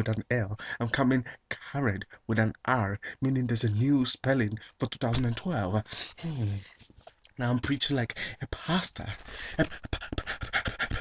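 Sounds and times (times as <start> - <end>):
man panting rapidly: 8.2 - 8.4, 9.2 - 11.0.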